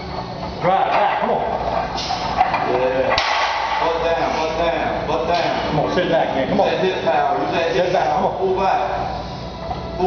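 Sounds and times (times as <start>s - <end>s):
sharp hissing breaths: 2.0s - 2.4s.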